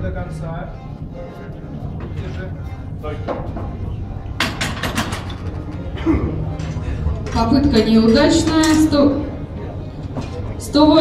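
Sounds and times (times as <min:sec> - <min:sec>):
background music: 0:00.0 - 0:11.0
voices in a hall: 0:00.0 - 0:11.0
sharp knocks and clatter: 0:04.4 - 0:05.6.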